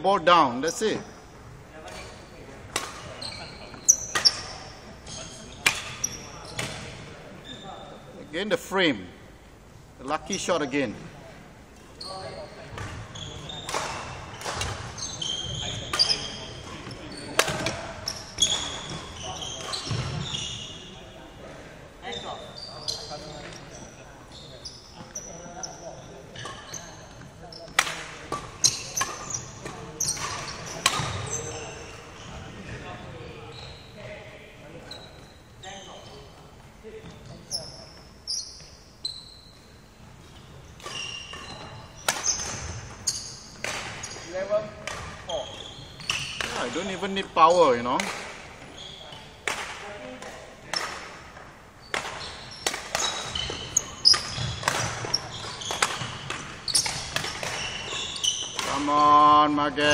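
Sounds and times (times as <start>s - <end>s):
racket striking shuttlecock: 2.7s - 3.1s, 5.6s - 6.0s, 13.6s - 15.0s, 17.4s - 17.8s, 40.8s - 43.0s, 51.9s - 57.6s
shoes squeaking on wooden floor: 3.0s - 8.0s, 12.0s - 21.1s, 22.0s - 34.2s, 34.8s - 48.0s, 48.6s - 49.4s, 51.8s - 59.9s.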